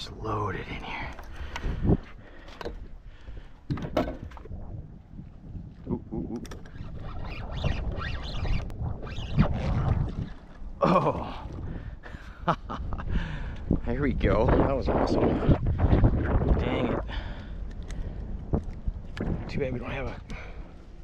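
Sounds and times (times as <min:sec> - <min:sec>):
wind and water low rumble: 0:00.0 - 0:21.0.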